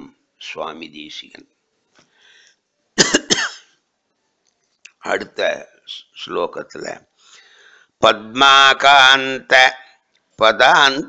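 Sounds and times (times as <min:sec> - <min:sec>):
man coughing: 0:03.0 - 0:03.7.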